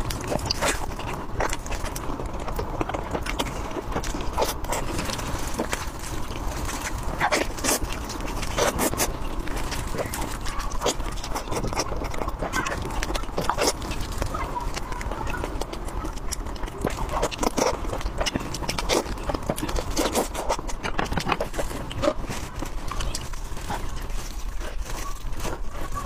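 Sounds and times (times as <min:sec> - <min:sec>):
lip smacking: 0:00.0 - 0:26.0
wet chewing: 0:00.0 - 0:26.0.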